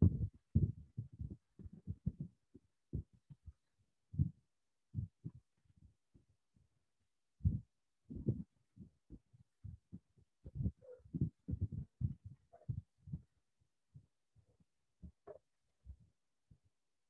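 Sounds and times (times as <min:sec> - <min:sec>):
muffled microphone handling thumps: 0:00.0 - 0:02.3, 0:10.4 - 0:13.2.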